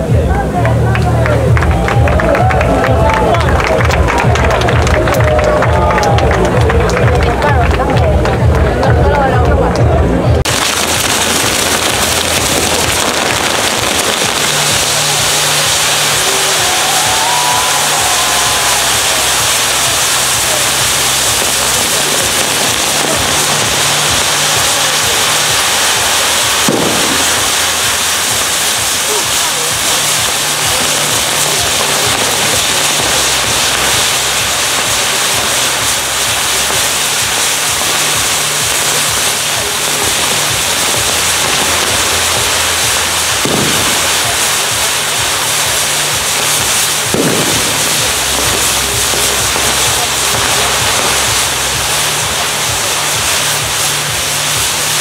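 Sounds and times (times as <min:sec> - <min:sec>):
fireworks crackling hiss: 0:00.0 - 0:55.0
low musical notes: 0:00.0 - 0:55.0
sharp bangs: 0:18.6 - 0:45.0, 0:46.6 - 0:52.1.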